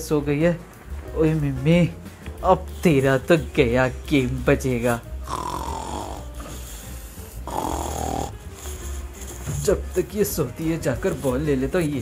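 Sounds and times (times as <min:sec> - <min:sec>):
dog snoring: 0:05.1 - 0:10.0.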